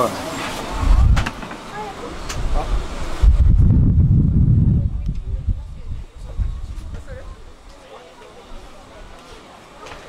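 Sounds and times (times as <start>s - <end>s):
loud low rumble: 2.7s - 6.7s.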